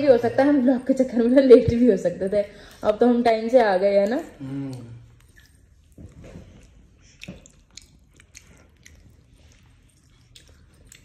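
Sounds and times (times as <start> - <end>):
wet mouth clicks and smacks: 2.6 - 11.0
person chewing food: 4.1 - 11.0.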